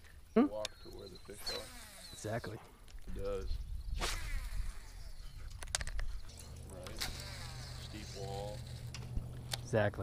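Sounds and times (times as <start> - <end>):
low engine drone: 4.3 - 10.0.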